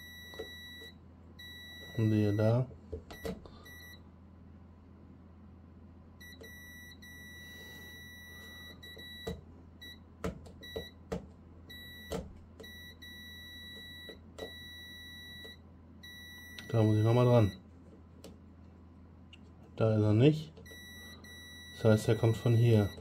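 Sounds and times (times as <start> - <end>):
multimeter beeping: 0.0 - 4.0, 6.2 - 10.0, 10.6 - 11.0, 11.7 - 17.6, 20.6 - 23.0.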